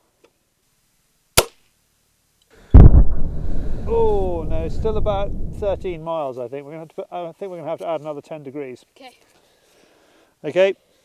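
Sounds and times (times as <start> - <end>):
toy gun pop: 1.4 - 1.6
loud low rumbling: 2.8 - 6.0.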